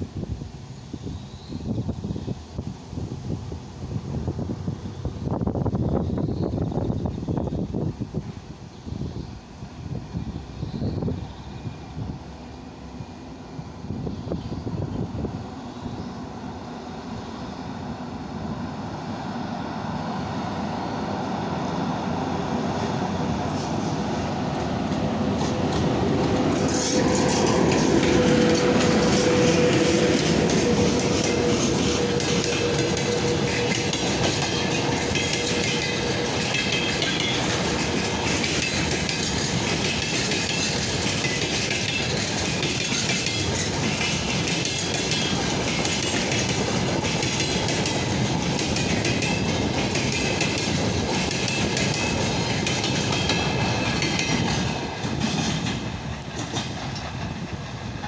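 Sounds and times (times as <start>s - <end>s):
electric locomotive hum: 0.0s - 58.0s
train wheels clacking on rail joints: 22.7s - 58.0s.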